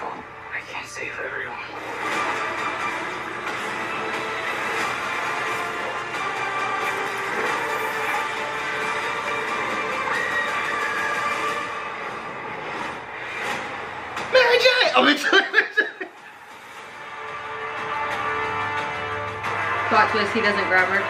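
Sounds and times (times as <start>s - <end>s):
dramatic music with sustained tones: 0.0s - 21.0s.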